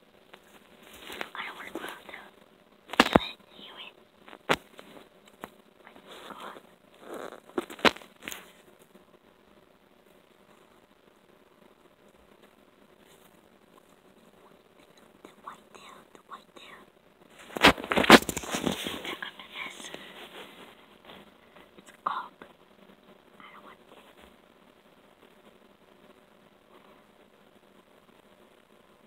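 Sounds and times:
rustling: 0:00.1 - 0:16.2, 0:17.2 - 0:29.0
faint whispering: 0:00.9 - 0:04.0, 0:05.8 - 0:08.7, 0:14.2 - 0:16.9, 0:18.7 - 0:22.6, 0:23.3 - 0:24.3.

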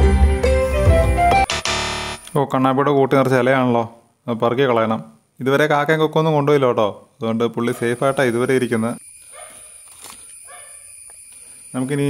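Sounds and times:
dog high-pitched calls: 0:09.2 - 0:11.0.

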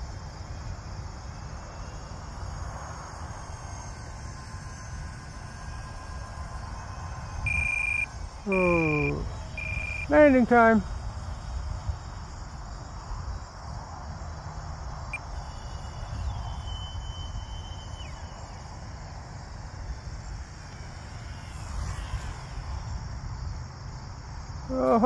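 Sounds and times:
wind rumble on microphone: 0:00.0 - 0:24.7
faint thin whine: 0:00.0 - 0:24.8
crickets chirping: 0:00.0 - 0:25.0.

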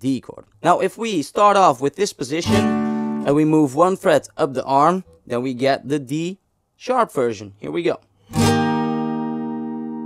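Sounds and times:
acoustic guitar chord strummed: 0:02.4 - 0:03.3, 0:08.2 - 0:10.0.

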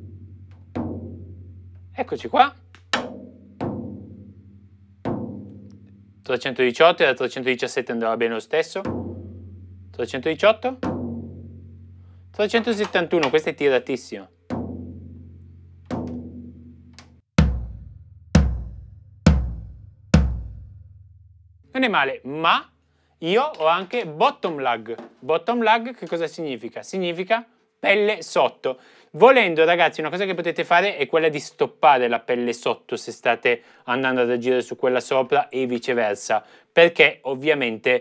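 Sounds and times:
drumstick tapping floor tom: 0:00.0 - 0:06.6, 0:08.8 - 0:13.7, 0:14.5 - 0:20.7.

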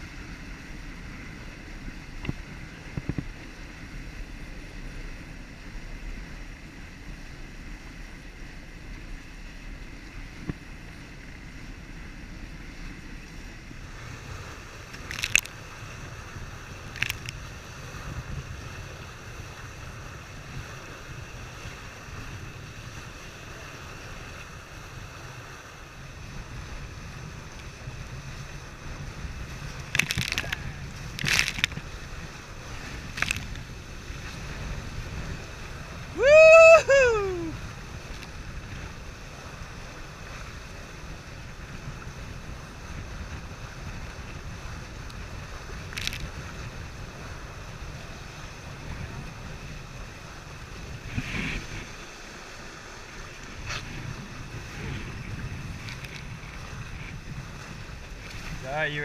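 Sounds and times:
water rushing along hulls: 0:00.0 - 0:59.0
wind buffeting microphone: 0:09.5 - 0:59.0.

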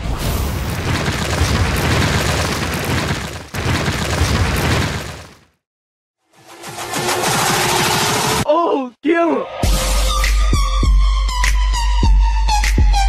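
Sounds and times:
boomy rumbling rush with crackle: 0:00.0 - 0:05.4.

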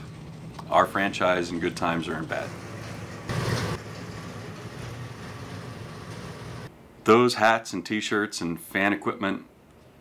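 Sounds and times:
heavy machinery humming: 0:01.2 - 0:06.7.

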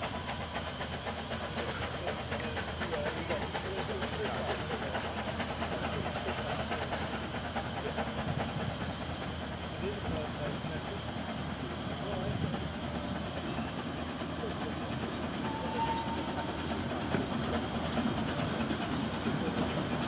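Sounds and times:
steam hissing: 0:00.0 - 0:20.0
faint voices: 0:00.1 - 0:20.0.

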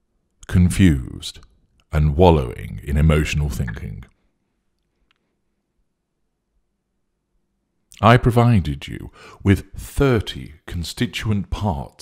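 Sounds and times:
man's voice: 0:00.4 - 0:04.2, 0:08.0 - 0:12.0.

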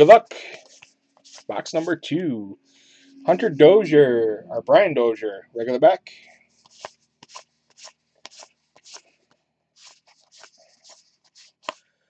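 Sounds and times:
cards being flipped through: 0:00.4 - 0:01.9, 0:06.6 - 0:11.8.

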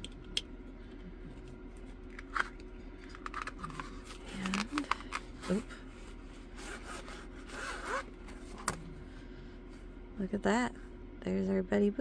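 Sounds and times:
canvas rubbing and rustling: 0:06.2 - 0:08.5.

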